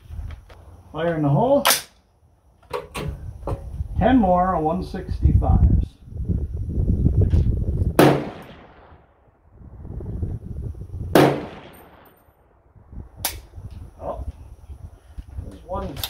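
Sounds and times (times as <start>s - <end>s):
rifle shots with echo: 8.0s - 9.1s, 11.1s - 12.2s.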